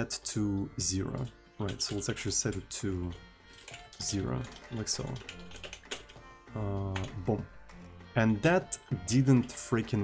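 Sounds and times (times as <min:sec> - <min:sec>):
keyboard keystrokes: 0:03.6 - 0:06.2.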